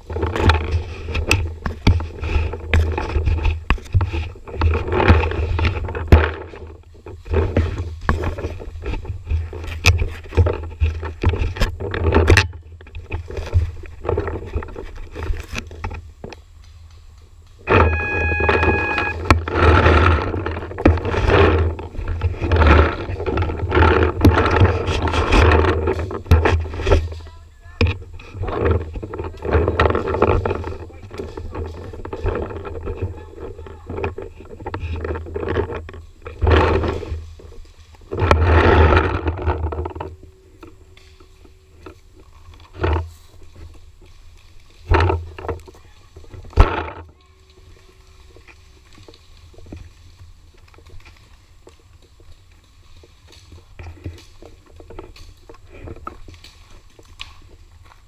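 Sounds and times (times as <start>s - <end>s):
brief steady tone: 17.7s - 19.4s.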